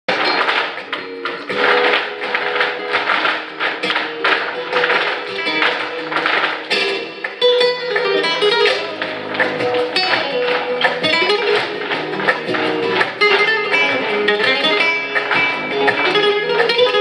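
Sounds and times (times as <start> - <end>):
flamenco guitar music: 0.1 - 17.0
rhythmic stamping of heeled shoes: 0.1 - 17.0.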